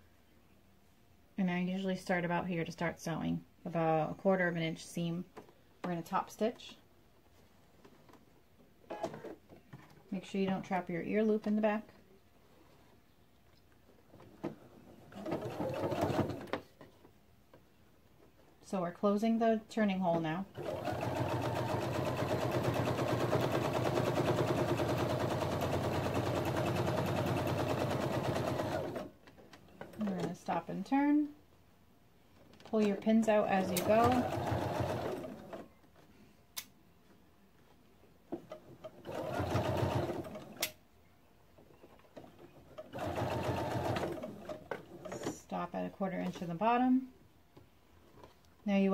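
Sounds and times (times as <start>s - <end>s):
sewing machine stitching: 15.1s - 16.6s, 20.5s - 29.1s, 33.5s - 35.6s, 38.8s - 40.7s, 42.2s - 45.3s.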